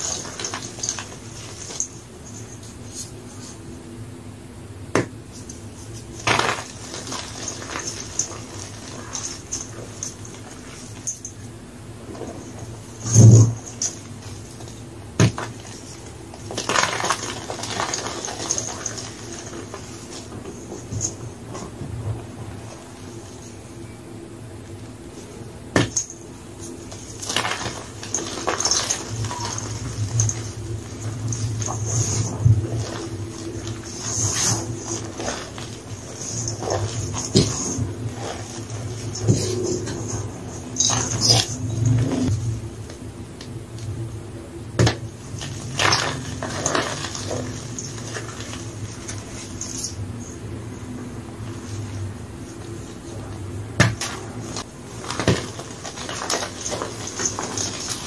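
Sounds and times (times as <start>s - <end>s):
hands crumbling chalk blocks: 0.0s - 3.6s, 4.9s - 11.4s, 12.0s - 23.6s, 25.7s - 41.9s, 44.8s - 50.1s, 53.8s - 58.0s
steady low hum: 0.0s - 58.0s.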